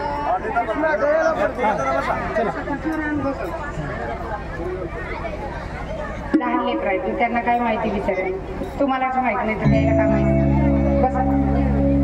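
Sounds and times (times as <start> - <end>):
overlapping chatter: 0.0 - 12.0.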